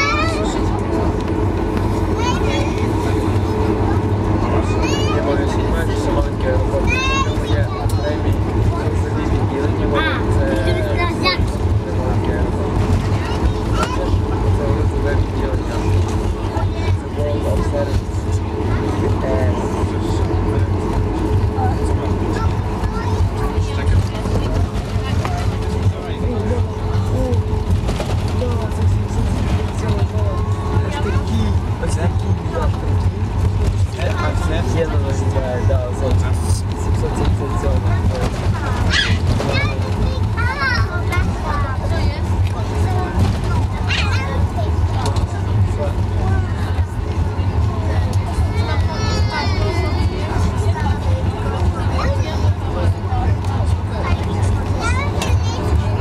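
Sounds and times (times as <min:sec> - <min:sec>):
aircraft engines droning: 0:00.0 - 0:56.0
passengers chatting: 0:00.0 - 0:56.0.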